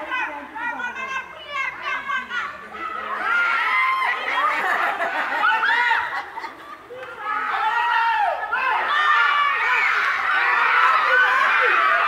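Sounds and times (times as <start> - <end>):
children and people shouting: 0.0 - 12.0.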